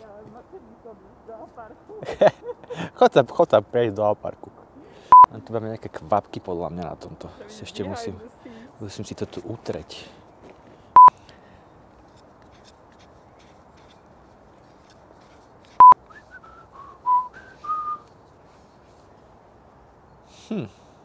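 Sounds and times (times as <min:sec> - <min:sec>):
short electronic beeps: 0:05.1 - 0:05.3
person whistling: 0:15.8 - 0:18.1.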